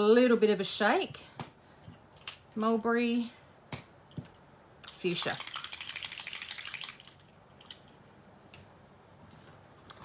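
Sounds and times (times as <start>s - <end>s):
small bottle rattling when shaken: 4.8s - 7.8s.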